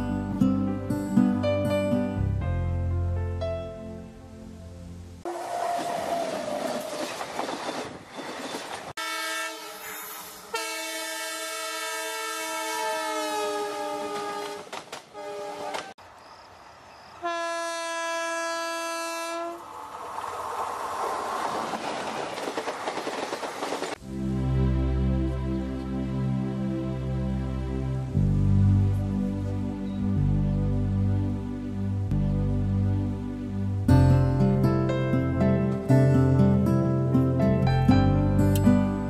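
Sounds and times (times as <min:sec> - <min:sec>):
passing train rumble and clatter: 0:05.0 - 0:09.0, 0:13.3 - 0:24.2
locomotive horn blast: 0:09.0 - 0:15.9, 0:17.2 - 0:19.6.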